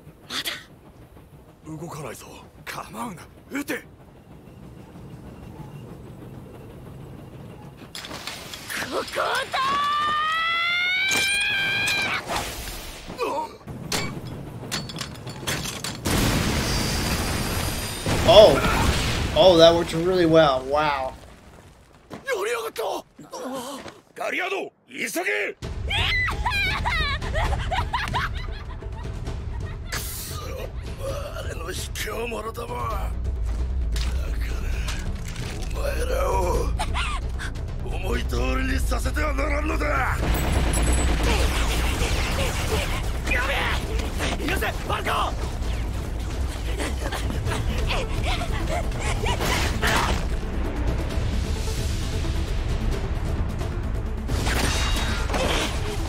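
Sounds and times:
steady low rumble: 0.0 - 8.0, 25.6 - 49.3, 50.2 - 54.4.

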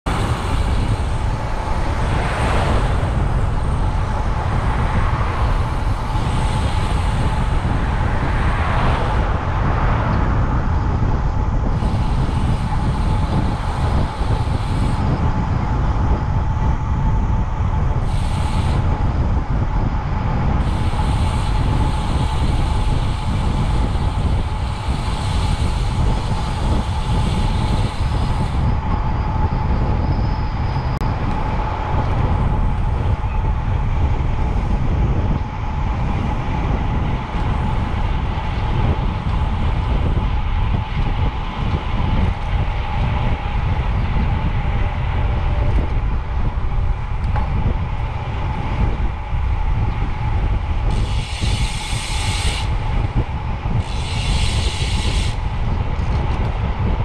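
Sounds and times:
wind and road rumble: 0.0 - 57.0.

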